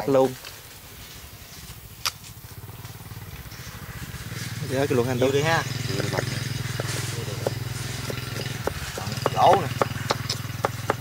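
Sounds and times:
cleaver knocking on chopping board: 0:06.8 - 0:11.0.

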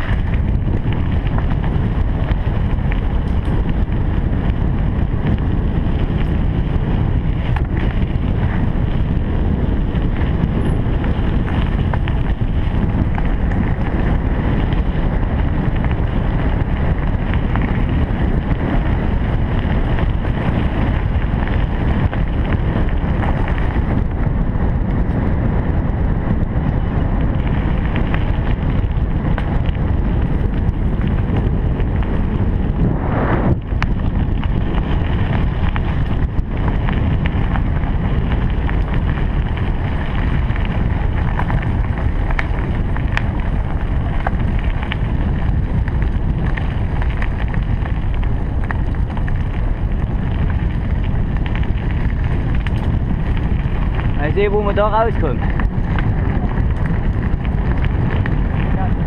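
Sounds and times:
bike tyres rolling on gravel: 0:00.0 - 0:59.0
wind buffeting microphone: 0:00.0 - 0:59.0.

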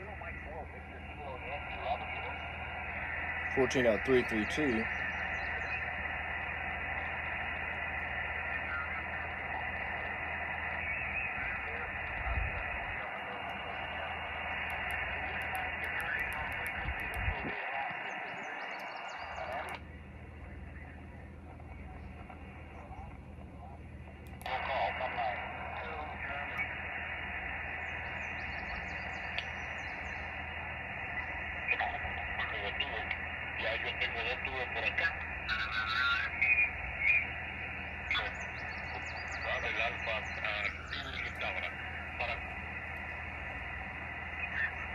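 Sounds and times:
radio band hiss: 0:00.0 - 0:44.9
weak distant voice on radio: 0:00.0 - 0:44.9.

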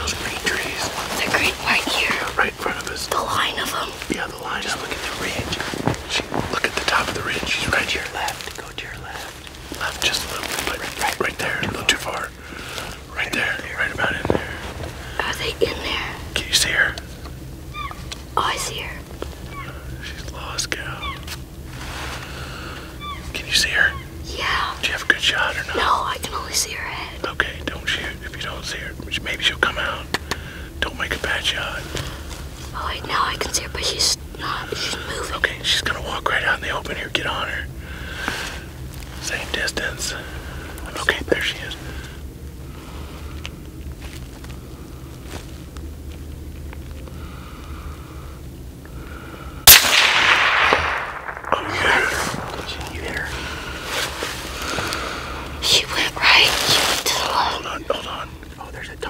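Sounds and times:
hushed whispering: 0:00.0 - 0:17.1, 0:18.4 - 0:21.4, 0:22.5 - 0:42.2, 0:50.0 - 0:59.0
steady low hum: 0:00.0 - 0:59.0.

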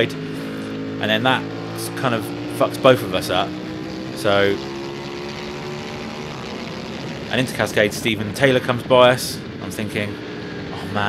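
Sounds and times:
motorcycle engine at high revs: 0:00.0 - 0:11.0.

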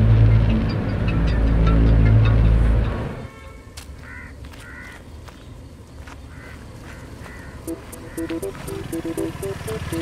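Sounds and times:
picked string music: 0:00.0 - 0:03.2, 0:07.7 - 0:10.0
faint street background: 0:00.0 - 0:10.0
bird calling: 0:06.2 - 0:10.0.

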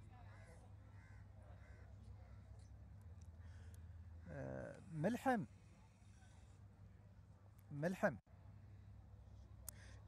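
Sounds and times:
faint crow cawing: 0:00.2 - 0:02.6, 0:03.3 - 0:04.8.

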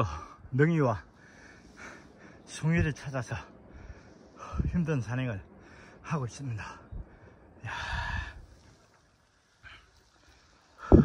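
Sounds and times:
man breathing out heavily: 0:06.9 - 0:08.6.

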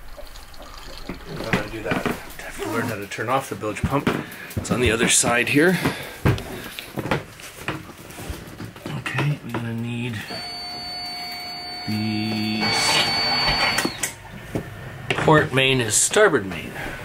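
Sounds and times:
thin high whine: 0:10.2 - 0:14.2.

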